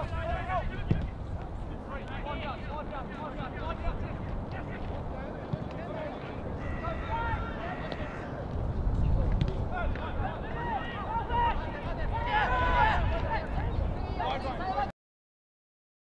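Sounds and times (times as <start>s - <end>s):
people shouting: 6.6s - 8.4s, 10.1s - 13.3s.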